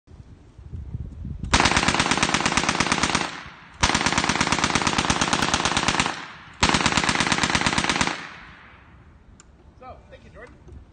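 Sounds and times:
automatic gunfire bursts: 1.5s - 8.7s.

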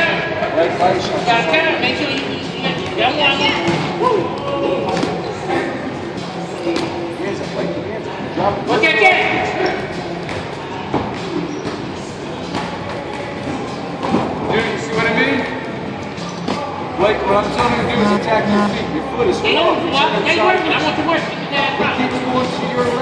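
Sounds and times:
indistinct voices echoing: 17.5s - 19.2s.

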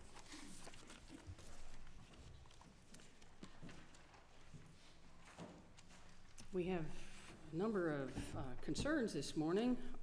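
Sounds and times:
faint knocks and shuffles: 0.0s - 10.0s.

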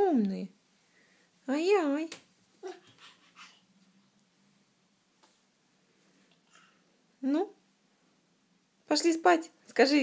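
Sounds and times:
baby cooing softly: 2.6s - 3.7s.

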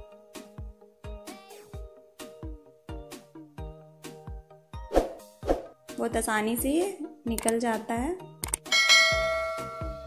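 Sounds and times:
soft background music: 0.0s - 10.0s
bright bell chime: 8.7s - 10.0s.

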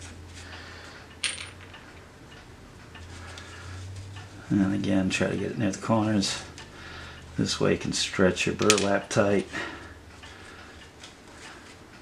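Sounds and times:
low steady hum: 0.0s - 12.0s
metal tacks clinking: 8.6s - 9.4s.

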